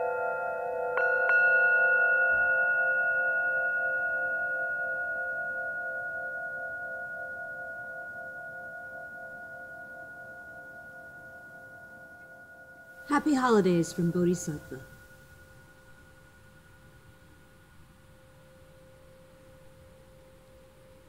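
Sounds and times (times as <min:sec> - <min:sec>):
singing bowls ringing: 0:00.0 - 0:21.0.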